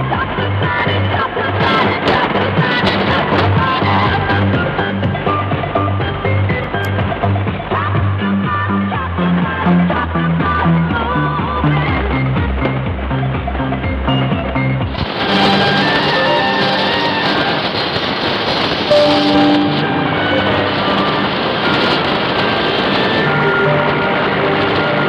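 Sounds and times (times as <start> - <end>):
radio static with whistling tones: 14.1 - 25.0
radio music through speaker: 14.8 - 23.8.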